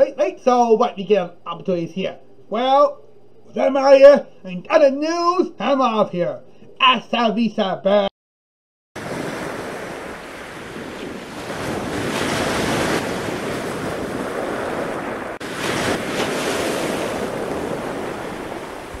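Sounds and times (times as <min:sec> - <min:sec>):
rushing surf: 0:09.0 - 0:19.0
wind buffeting microphone: 0:09.0 - 0:19.0.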